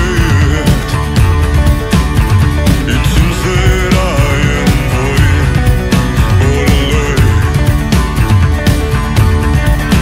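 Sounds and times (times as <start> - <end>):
drum kit beat: 0.0 - 10.0
rock band playing: 0.0 - 10.0.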